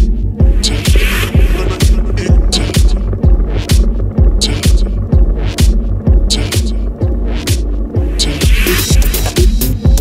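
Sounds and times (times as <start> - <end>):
deep sustained bass: 0.0 - 10.0
minimal techno track: 0.0 - 10.0
steady kick drum: 0.0 - 10.0.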